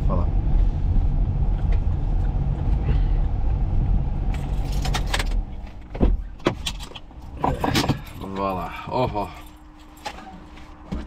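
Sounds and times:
car engine running: 0.0 - 11.0
keys jangling in ignition: 4.3 - 5.4, 6.7 - 10.3.

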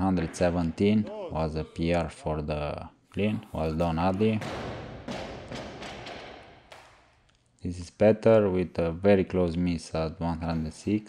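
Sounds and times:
barbell thudding on rubber platform: 4.4 - 6.9.

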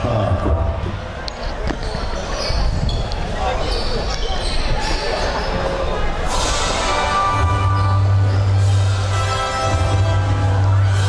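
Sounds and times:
people talking: 0.0 - 7.4.

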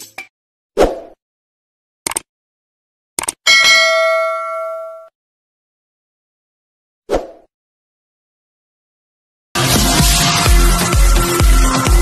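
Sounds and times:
quick double clicks: 2.0 - 2.3, 3.2 - 3.4
notification bell ding: 3.5 - 5.1.

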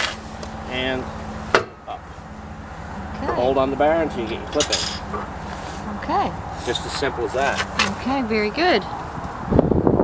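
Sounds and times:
metal chain clank: 4.2 - 5.3.

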